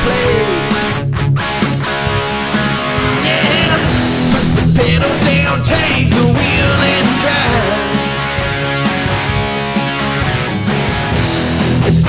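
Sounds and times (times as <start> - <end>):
bass: 0.0 - 12.0
drums: 0.0 - 12.0
electric guitar: 0.0 - 12.0.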